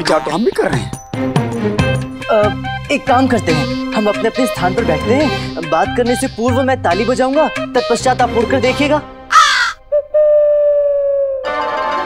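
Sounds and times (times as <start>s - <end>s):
harsh caw-like squawk: 9.3s - 9.8s.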